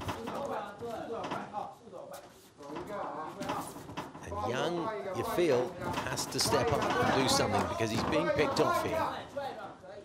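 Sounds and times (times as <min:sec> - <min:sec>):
venue background noise: 0:00.0 - 0:10.0
man talking: 0:04.2 - 0:10.0.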